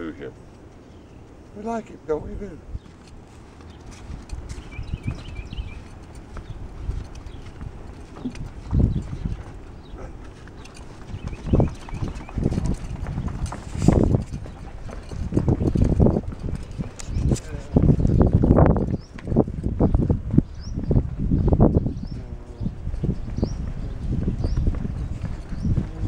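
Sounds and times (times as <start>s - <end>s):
sandal footsteps on wooden boardwalk: 0.4s - 21.9s, 22.8s - 26.0s.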